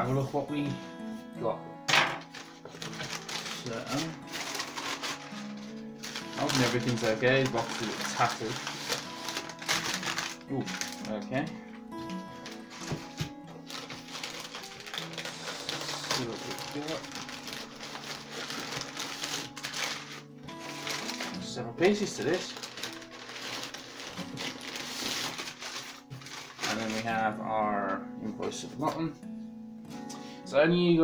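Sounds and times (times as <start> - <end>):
background music: 0.0 - 31.0
packing paper crinkling: 2.2 - 27.3.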